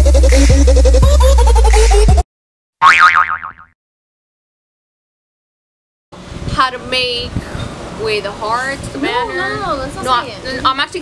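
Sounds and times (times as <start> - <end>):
cartoon boing sound effect: 2.8 - 3.8.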